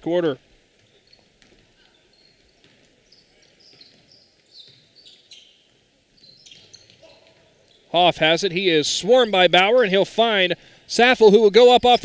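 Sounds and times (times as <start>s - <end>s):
sneakers squeaking on hardwood: 0.7s - 8.0s.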